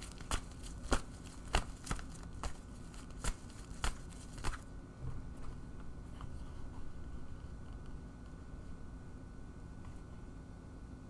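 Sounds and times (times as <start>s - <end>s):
cards snapping: 0.0s - 4.6s
cards being shuffled: 0.0s - 4.7s.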